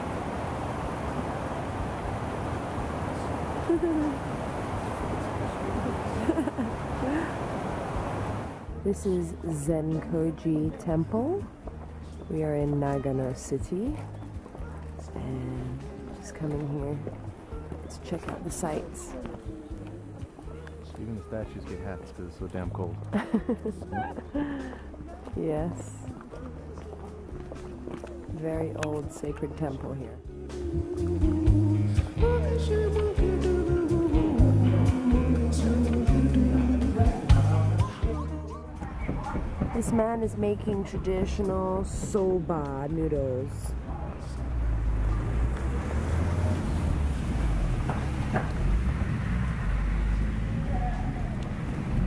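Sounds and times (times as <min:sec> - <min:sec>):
faint voices: 0:00.0 - 0:30.4, 0:35.6 - 0:47.1, 0:49.5 - 0:52.0.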